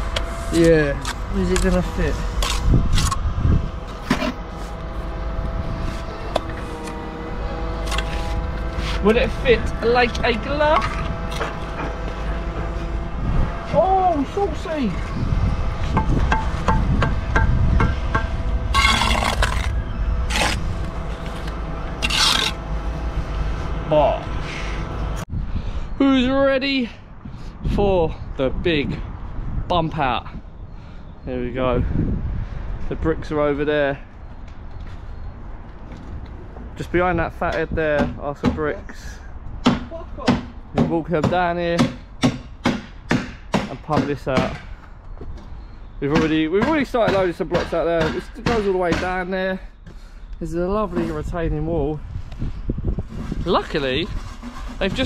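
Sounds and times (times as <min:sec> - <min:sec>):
trowel scraping mortar: 0:07.8 - 0:11.9, 0:18.7 - 0:22.6, 0:53.2 - 0:55.0.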